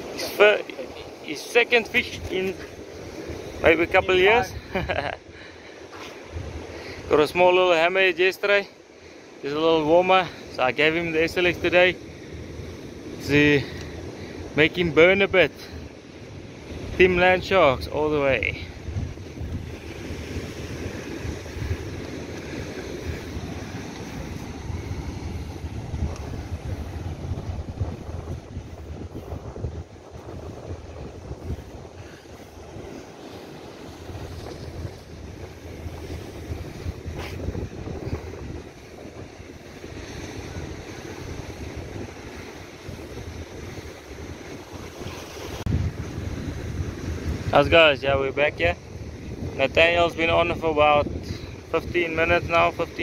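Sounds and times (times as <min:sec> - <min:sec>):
wind buffeting microphone: 0:00.0 - 0:07.6, 0:10.3 - 0:53.0
surf washing against rocks: 0:00.0 - 0:53.0.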